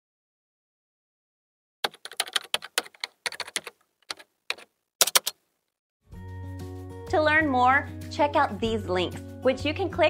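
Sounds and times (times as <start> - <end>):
computer keyboard typing: 1.8 - 5.4.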